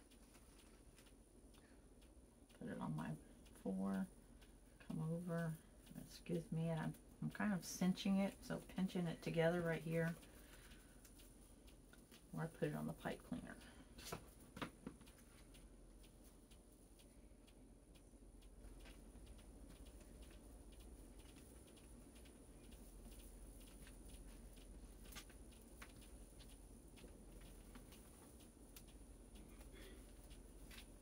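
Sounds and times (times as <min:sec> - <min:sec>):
plastic mesh ticking and crinkling: 0:00.0 - 0:31.0.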